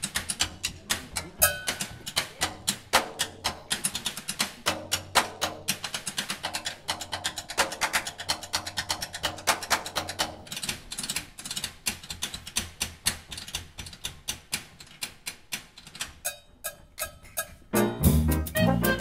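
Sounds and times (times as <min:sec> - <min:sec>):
drum solo on snare and toms: 0:00.0 - 0:10.4, 0:16.3 - 0:19.0.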